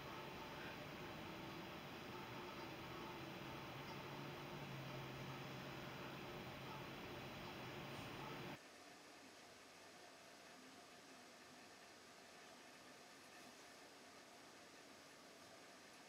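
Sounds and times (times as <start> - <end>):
faint room tone hiss: 0.0 - 16.0.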